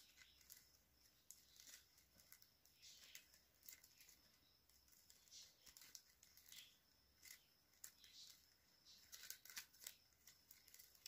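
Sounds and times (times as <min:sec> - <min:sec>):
plastic wire strands scraping: 0:00.0 - 0:11.0.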